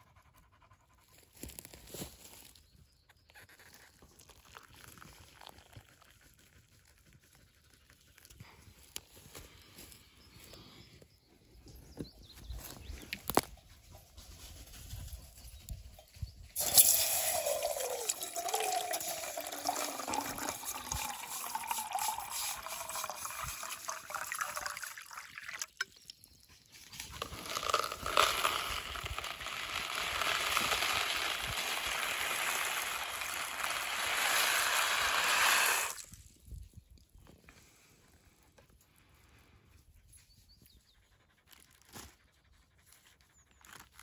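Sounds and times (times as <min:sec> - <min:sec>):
water pouring into metal pot: 0:16.6 - 0:26.0, 0:27.2 - 0:36.1.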